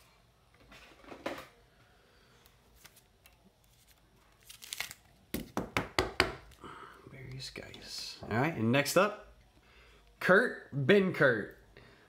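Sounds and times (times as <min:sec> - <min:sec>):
cards rustling: 0:02.5 - 0:05.6.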